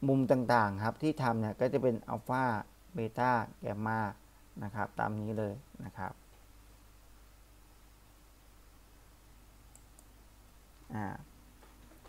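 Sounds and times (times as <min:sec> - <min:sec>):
computer mouse clicks: 0:09.7 - 0:10.2.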